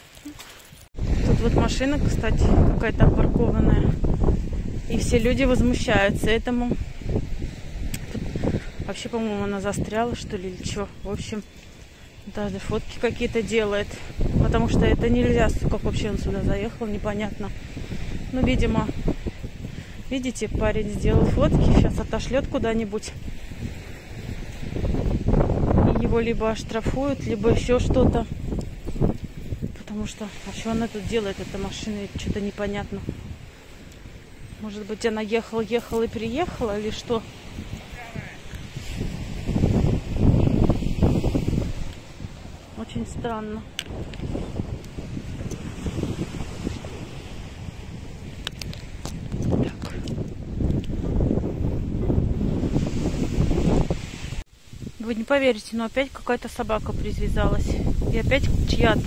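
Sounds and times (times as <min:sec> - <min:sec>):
wind buffeting microphone: 0:00.7 - 0:59.0.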